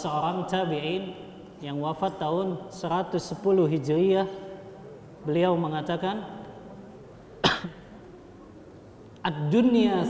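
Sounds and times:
man coughing: 7.4s - 7.9s.

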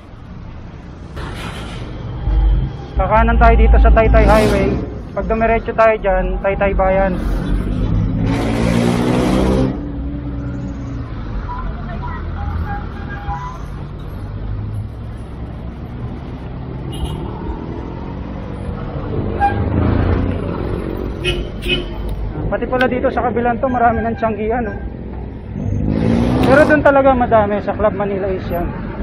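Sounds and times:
car engines in traffic: 0.0s - 29.0s
wind and tyre rumble: 0.0s - 29.0s
vehicle passing close by: 7.0s - 11.2s, 25.6s - 26.8s.

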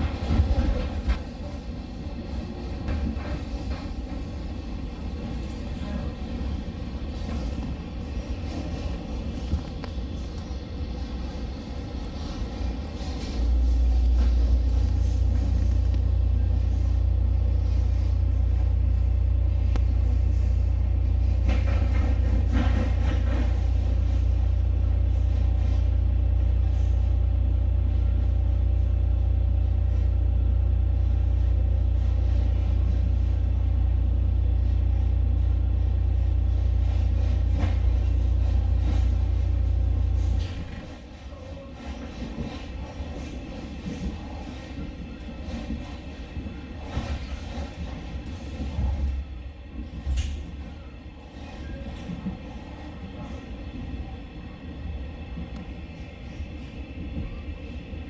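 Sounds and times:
train rumbling inside carriage: 0.0s - 58.0s.

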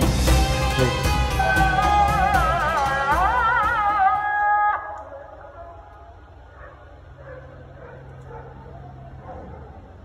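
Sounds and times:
distant city ambience: 4.2s - 10.0s.

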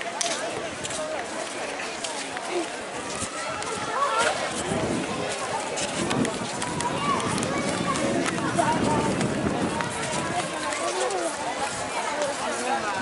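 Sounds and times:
people talking: 0.0s - 13.0s
walking footsteps: 0.0s - 13.0s.

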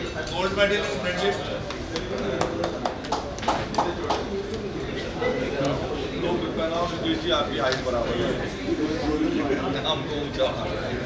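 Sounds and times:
people clapping: 1.6s - 4.6s.

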